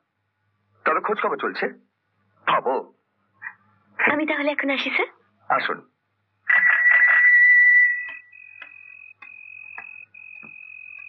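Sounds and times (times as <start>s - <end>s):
soft ticks: 8.1s - 11.0s.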